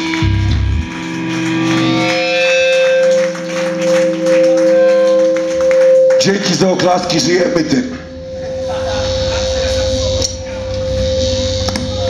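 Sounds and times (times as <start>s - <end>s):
electric guitars ringing note: 0.0s - 12.0s.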